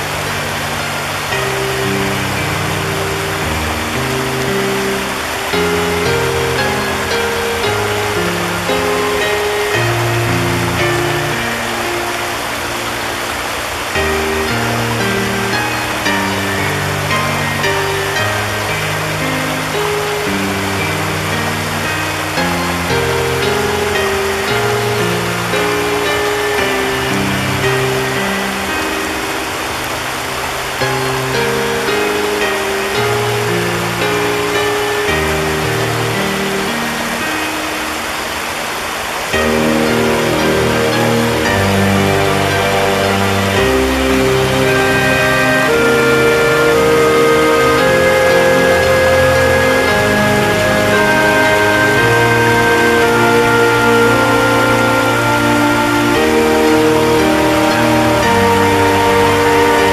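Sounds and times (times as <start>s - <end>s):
soft slow background music: 0.0s - 59.9s
stream running over rocks: 0.0s - 59.9s.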